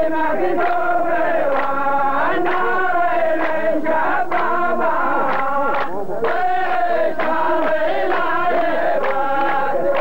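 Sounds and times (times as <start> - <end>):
men chanting in unison: 0.0 - 10.0.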